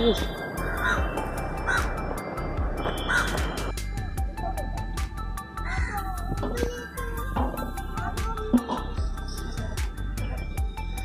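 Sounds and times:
background music: 0.0s - 11.0s
crows cawing: 0.6s - 2.1s, 2.9s - 3.6s, 5.6s - 6.2s.

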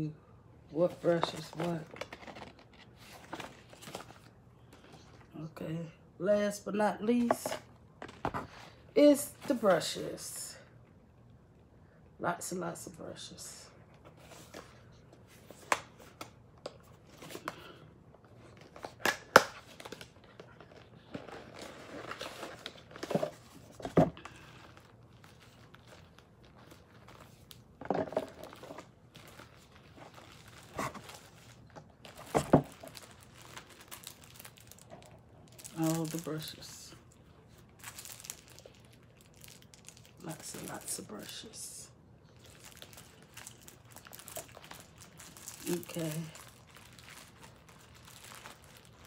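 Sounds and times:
plastic wrapper crinkling: 0.9s - 5.1s, 18.4s - 41.6s, 42.2s - 49.0s.

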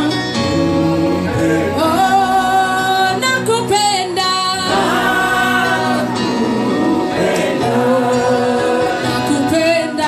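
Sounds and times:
worship song singing: 0.0s - 10.0s.

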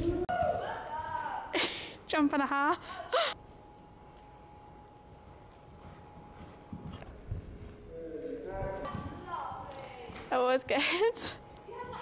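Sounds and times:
thin constant hum: 0.0s - 12.0s.

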